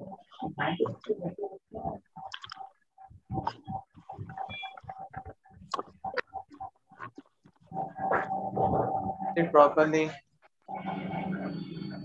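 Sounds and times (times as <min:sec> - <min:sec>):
choppy voice over video call: 0:00.0 - 0:02.6, 0:03.2 - 0:06.3.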